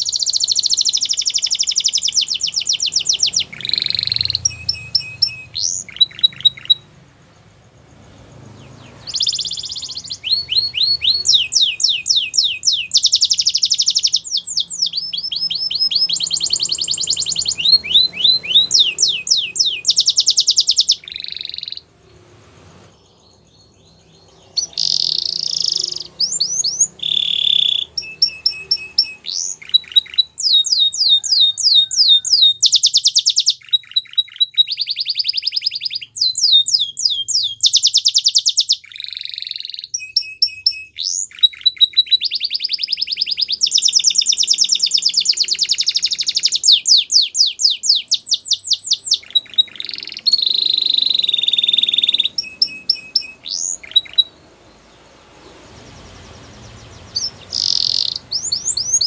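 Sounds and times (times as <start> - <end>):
canary singing trills: 0.0 - 59.0.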